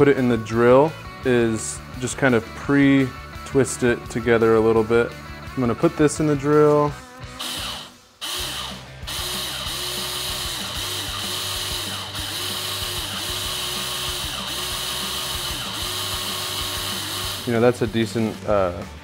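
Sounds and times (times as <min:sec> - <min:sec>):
power drill running: 0:07.3 - 0:18.4.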